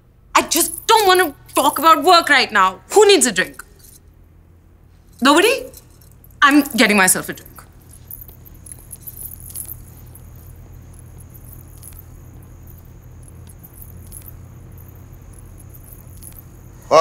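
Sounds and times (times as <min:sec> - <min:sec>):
steady low hum: 0:00.0 - 0:17.0
faint light clicks and clinks: 0:05.0 - 0:16.8.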